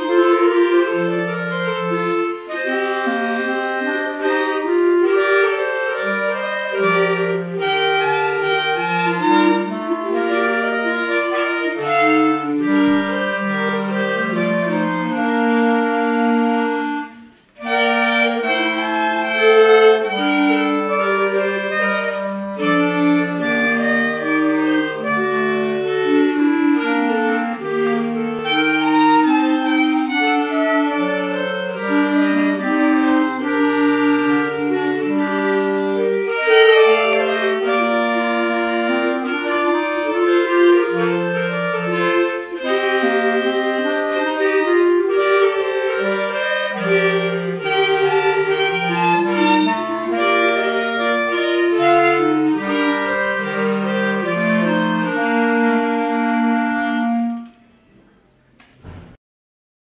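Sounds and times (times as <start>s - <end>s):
clarinet quartet playing: 0.0s - 59.1s.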